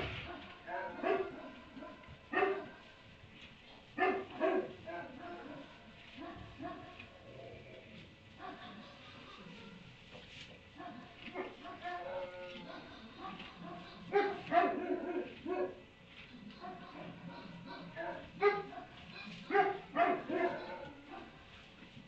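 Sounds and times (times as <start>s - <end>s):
low steady background noise: 0.0s - 22.0s.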